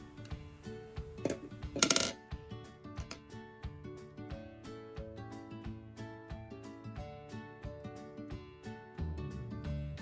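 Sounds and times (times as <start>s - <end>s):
light music with plucked notes: 0.0s - 10.0s.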